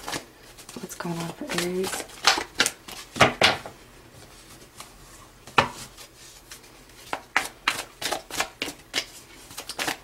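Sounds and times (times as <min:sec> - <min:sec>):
cards being shuffled by hand: 0:00.0 - 0:03.5, 0:04.2 - 0:10.0.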